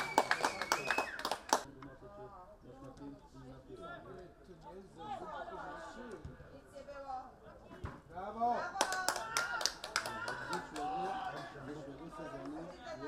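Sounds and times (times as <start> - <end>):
hand claps: 0.0 - 1.7.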